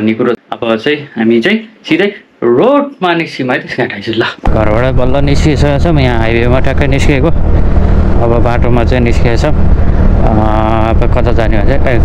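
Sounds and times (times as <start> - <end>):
man talking: 0.0 - 7.4, 8.2 - 9.6, 10.2 - 12.0
road noise: 4.5 - 12.0.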